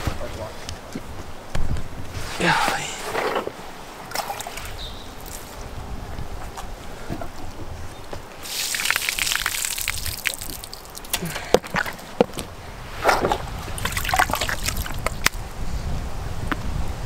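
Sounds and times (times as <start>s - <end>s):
water splashing onto pavement: 8.4s - 12.3s, 13.2s - 15.4s.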